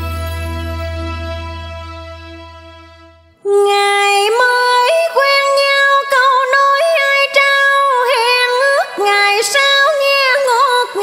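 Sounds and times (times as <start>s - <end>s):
woman singing: 3.4s - 11.0s.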